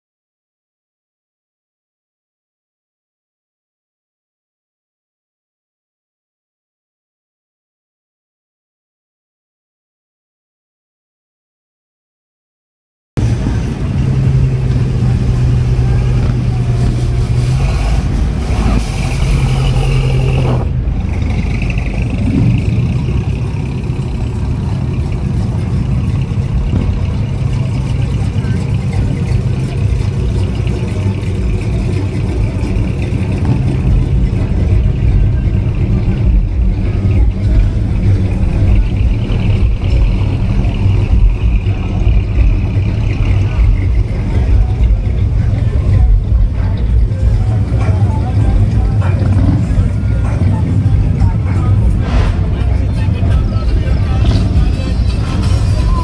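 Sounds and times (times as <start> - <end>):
car engines rumbling past: 13.2 - 56.0.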